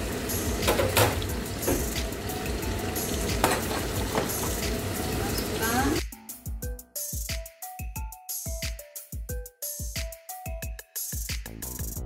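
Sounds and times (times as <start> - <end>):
oil sizzling in pans: 0.0 - 6.0.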